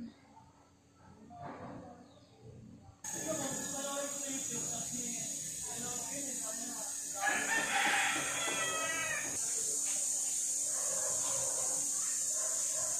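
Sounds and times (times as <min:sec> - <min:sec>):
high-pitched hiss: 0:03.1 - 0:12.9
rooster crowing: 0:07.1 - 0:09.4.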